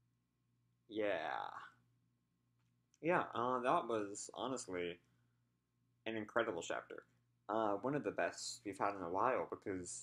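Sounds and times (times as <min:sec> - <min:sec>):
man saying yeah: 0:00.9 - 0:01.7.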